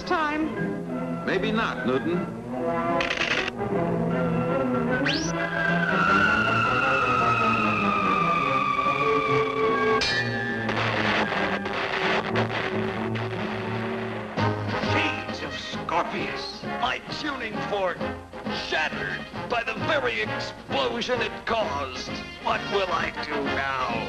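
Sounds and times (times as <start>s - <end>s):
orchestral underscore music: 0.0s - 24.0s
high falling whistling tone: 4.9s - 10.7s
explosion burst: 5.9s - 15.0s.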